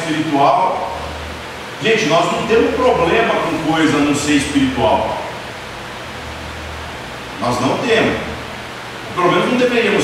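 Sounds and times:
steady hiss: 0.0 - 10.0
low hum: 0.7 - 9.2
man speaking: 1.8 - 5.3, 7.4 - 8.4, 9.2 - 10.0.

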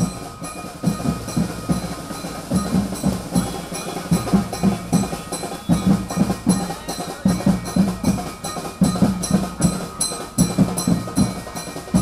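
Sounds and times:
drums beaten quickly: 0.0 - 12.0
metallic ringing: 0.0 - 12.0.

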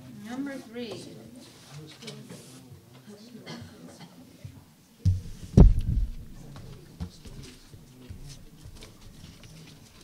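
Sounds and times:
microphone handling taps: 5.0 - 8.4
papers rustling: 5.2 - 10.0.

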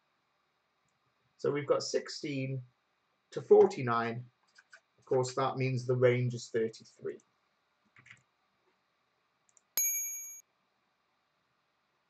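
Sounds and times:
bright electronic ding: 9.8 - 10.4.

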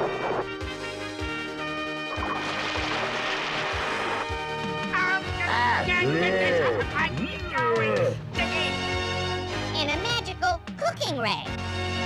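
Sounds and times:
dramatic cartoon music: 0.0 - 12.0
water rushing and splashing: 2.1 - 4.9.

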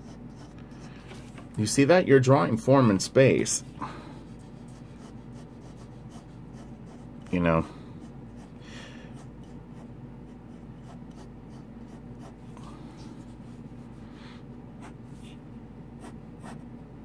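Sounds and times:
pencil scratching on paper: 0.0 - 1.3, 4.2 - 12.5, 14.8 - 15.4, 16.0 - 16.7
steady low hum: 0.0 - 17.0.

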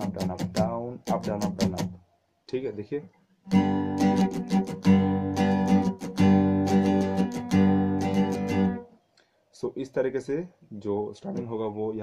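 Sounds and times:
acoustic guitar strumming: 0.0 - 2.0, 3.5 - 8.9.

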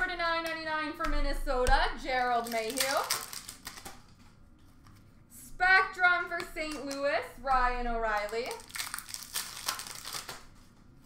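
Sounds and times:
trading cards being handled: 2.1 - 5.2.

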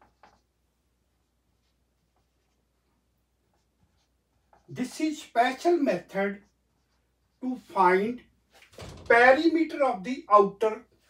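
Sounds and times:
marker pen writing on whiteboard: 0.0 - 8.6.

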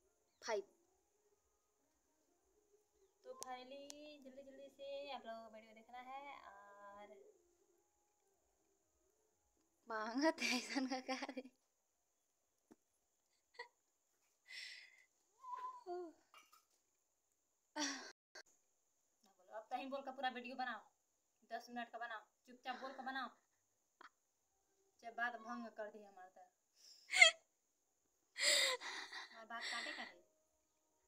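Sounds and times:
woman's breathy laughs: 26.9 - 27.4, 28.4 - 30.1.

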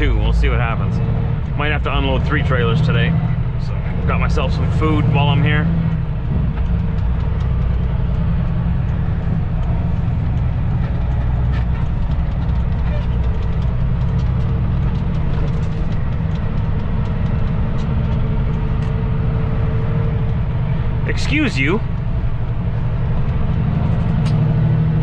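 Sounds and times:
truck diesel engine drone: 0.0 - 25.0.

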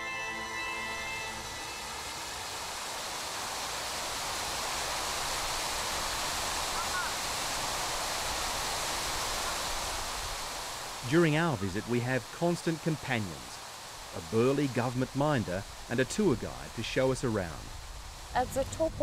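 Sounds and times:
fountain water splashing: 1.0 - 19.0.

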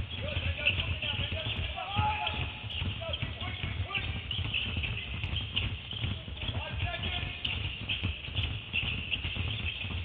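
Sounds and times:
basketballs bouncing on hardwood: 0.0 - 10.0.

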